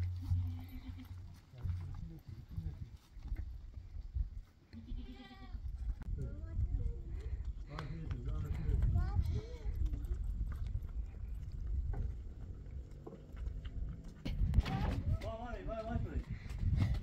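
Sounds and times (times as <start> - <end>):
footsteps on stony dirt path: 0.0 - 6.2, 6.9 - 17.0
animal bleating: 0.2 - 1.2, 4.7 - 5.6.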